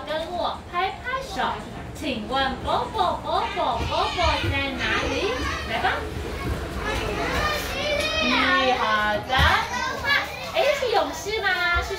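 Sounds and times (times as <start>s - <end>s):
young children chattering: 0.8s - 1.9s, 2.6s - 11.9s.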